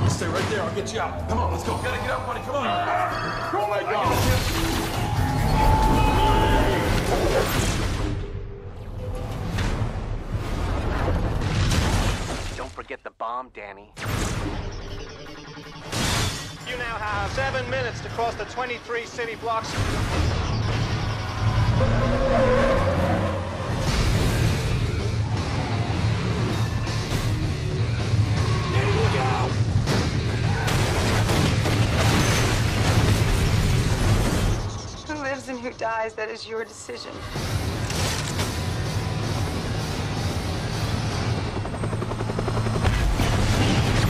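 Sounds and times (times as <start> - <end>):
helicopter rotor chopping: 38.7 - 44.0.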